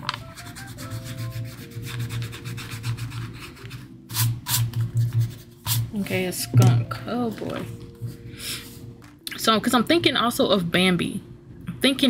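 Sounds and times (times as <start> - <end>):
eraser scrubbing paper: 0.0 - 6.2.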